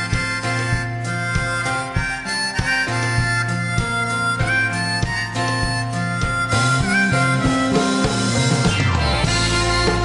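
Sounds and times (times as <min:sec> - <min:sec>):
drums steady beat: 0:00.0 - 0:10.0
guitars: 0:00.0 - 0:10.0
harmonica melody: 0:00.0 - 0:10.0
keyboard: 0:00.0 - 0:10.0.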